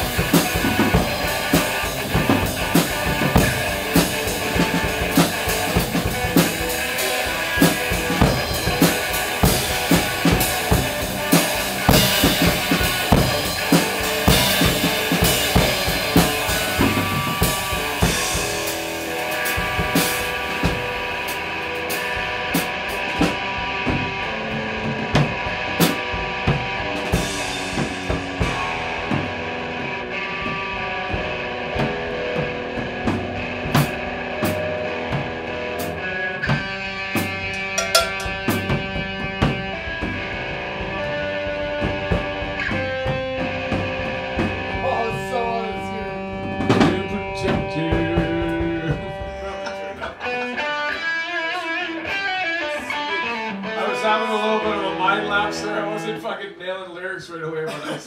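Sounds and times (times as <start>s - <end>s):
drum kit: 0.0s - 52.2s
electric guitar: 0.0s - 56.2s.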